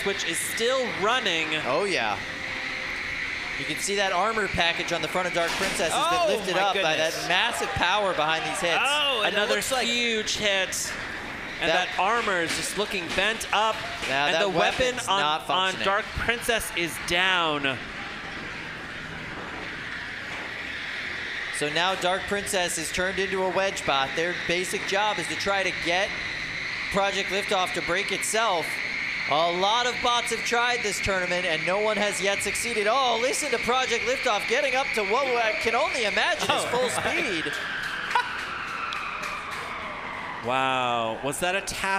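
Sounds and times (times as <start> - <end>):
arena background noise: 0.0 - 41.9.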